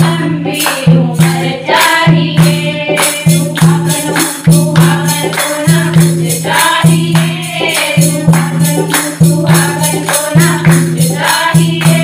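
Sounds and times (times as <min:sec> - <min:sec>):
percussion beat: 0:00.0 - 0:12.0
women singing together: 0:00.0 - 0:12.0
hand clapping: 0:00.5 - 0:12.0.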